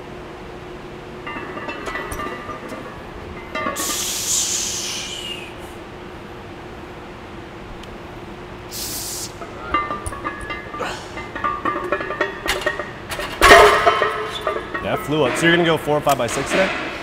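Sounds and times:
weight plates clinking and rattling: 1.2 - 4.0, 9.4 - 16.9
short hiss: 8.7 - 9.4
barbell crashing into rack hooks: 9.6 - 14.8.

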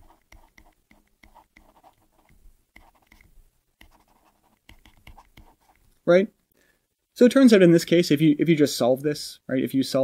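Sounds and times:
stylus scratching on pen tablet: 0.0 - 5.8.

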